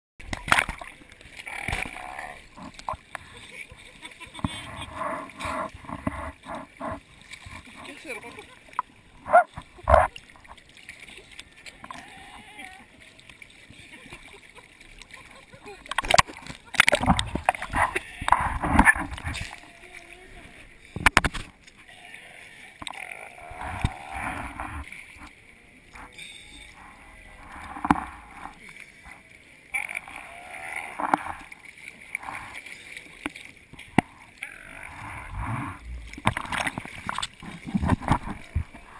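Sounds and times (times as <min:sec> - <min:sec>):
seawater sloshing and splashing: 0:00.2 - 0:38.9.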